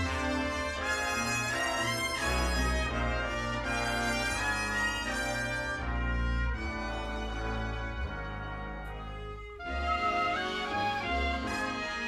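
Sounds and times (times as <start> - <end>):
orchestral music led by brass: 0.0 - 12.0.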